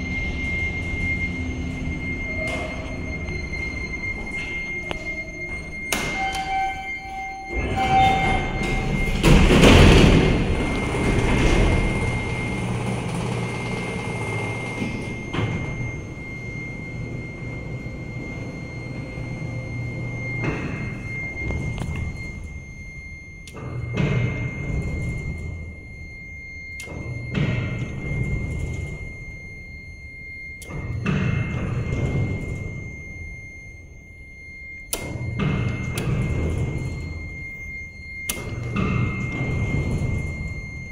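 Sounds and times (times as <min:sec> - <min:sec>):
short beep tone: 0:00.0 - 0:13.0, 0:13.6 - 0:40.9
elevator doors rattling: 0:00.0 - 0:25.9, 0:30.8 - 0:33.0, 0:34.9 - 0:40.9
elevator car humming: 0:00.0 - 0:40.9
high whine: 0:00.0 - 0:40.9.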